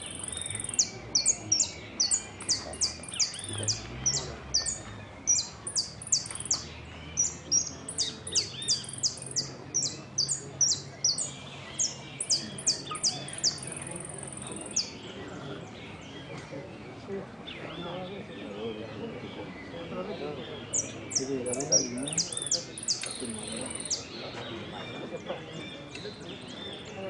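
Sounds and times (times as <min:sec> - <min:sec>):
finch singing: 0:00.0 - 0:16.8, 0:17.4 - 0:27.0.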